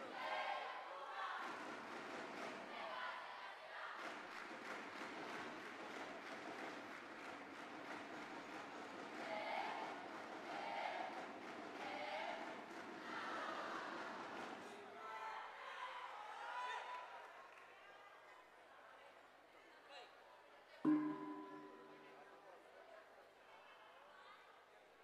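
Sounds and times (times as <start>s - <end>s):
hubbub of crowd voices: 0.0s - 4.5s, 8.0s - 25.0s.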